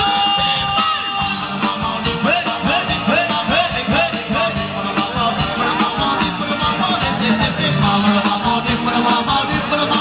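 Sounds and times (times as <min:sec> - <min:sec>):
dance band music over loudspeakers: 0:00.0 - 0:10.0
person singing: 0:00.0 - 0:10.0
steady drum beat: 0:00.0 - 0:10.0.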